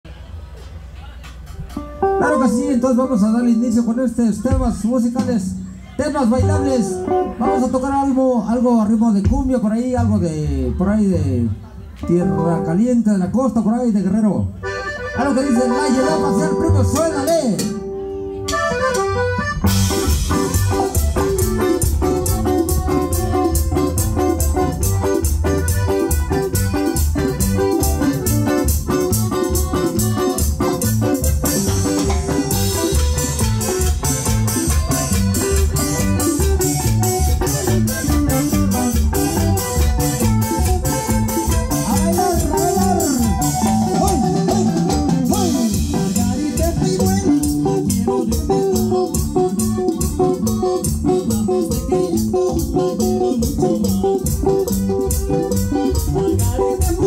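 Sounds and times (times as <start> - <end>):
live band playing dance music: 0.8 - 57.0.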